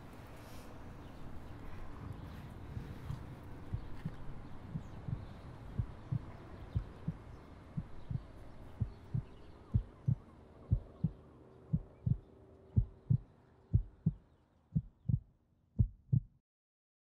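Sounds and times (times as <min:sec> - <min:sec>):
slow heartbeat double thumps: 0:03.7 - 0:12.2, 0:12.8 - 0:14.2, 0:14.8 - 0:16.4.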